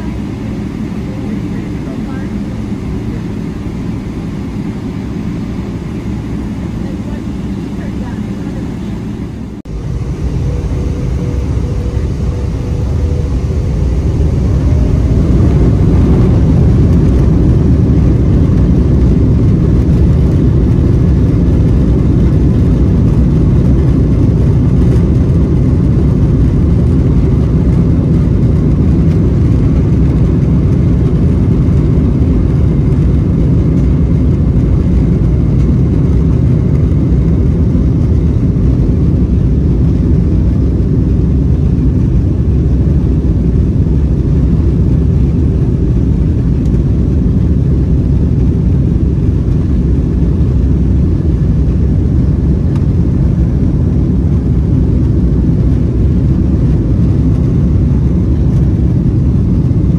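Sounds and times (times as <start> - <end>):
jet engines spooling up: 0.0 - 59.8.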